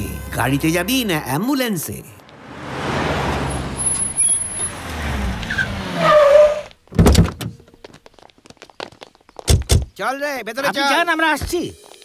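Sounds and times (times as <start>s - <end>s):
cars driving: 2.0s - 6.8s
high squeal: 3.5s - 6.7s.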